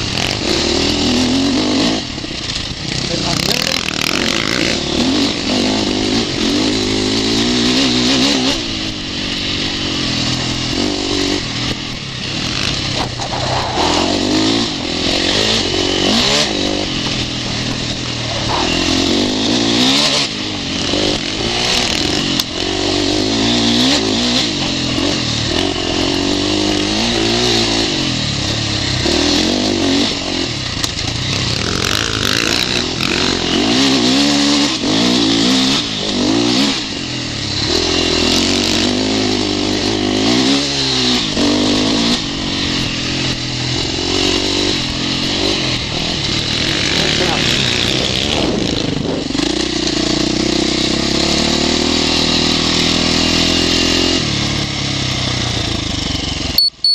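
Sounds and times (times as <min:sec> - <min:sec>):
motorcycle engine revving: 0:00.0 - 0:56.9.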